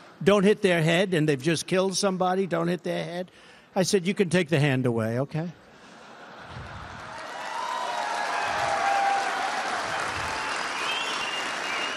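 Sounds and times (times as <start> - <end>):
audience applauding: 6.4 - 11.9.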